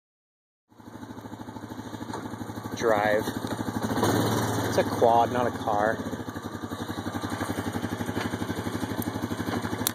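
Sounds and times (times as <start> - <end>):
atv engine idling: 0.7 - 9.9.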